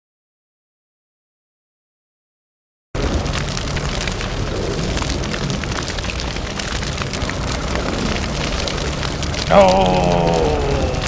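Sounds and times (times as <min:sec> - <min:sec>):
large fire crackling and hissing: 0:03.0 - 0:11.0
low fire rumble: 0:03.0 - 0:11.0.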